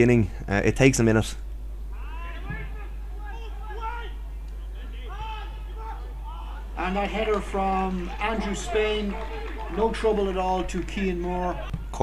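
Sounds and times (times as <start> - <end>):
steady low hum: 0.0 - 12.0
distant players shouting: 1.9 - 12.0.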